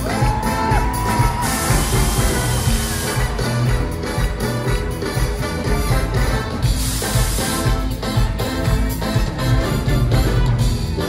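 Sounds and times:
live band music: 0:00.0 - 0:11.0
hiss of gas jets: 0:06.7 - 0:07.8.

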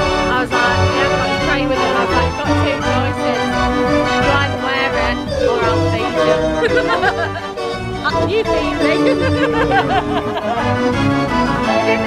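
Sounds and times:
drum kit beat: 0:00.0 - 0:11.6
dance organ playing a tune: 0:00.0 - 0:12.0.

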